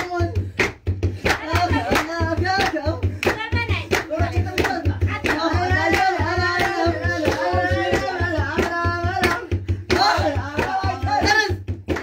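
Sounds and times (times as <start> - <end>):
rhythmic handclaps: 0.0 - 12.0
steady low drumbeat: 0.0 - 12.0
group singing: 1.2 - 12.0.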